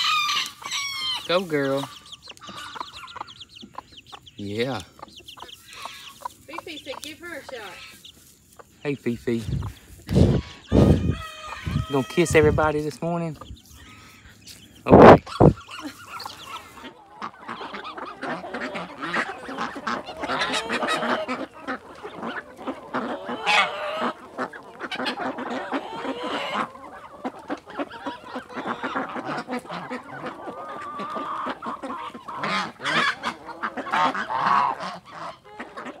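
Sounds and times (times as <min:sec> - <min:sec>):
poultry calling: 0:00.0 - 0:36.0.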